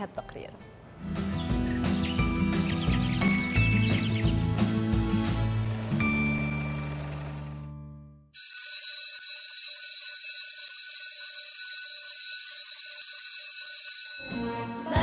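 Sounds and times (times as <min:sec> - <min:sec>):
music: 0:00.0 - 0:08.3, 0:14.2 - 0:15.0
electric school bell ringing: 0:08.4 - 0:14.5.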